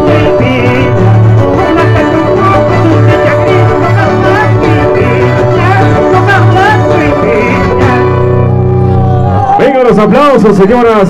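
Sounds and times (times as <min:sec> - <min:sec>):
folk music with fiddle and strings: 0:00.0 - 0:08.8.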